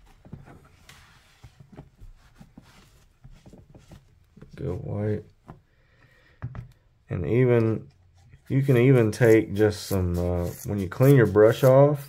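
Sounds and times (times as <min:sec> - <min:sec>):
cloth rubbing leather: 0:00.0 - 0:04.9.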